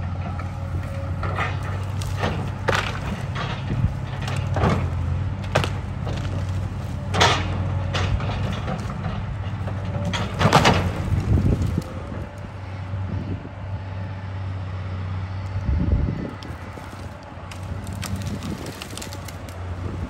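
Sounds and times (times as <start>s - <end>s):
excavator diesel engine under load: 0.0s - 20.0s
wood cracking and snapping: 0.2s - 12.6s, 16.3s - 20.0s.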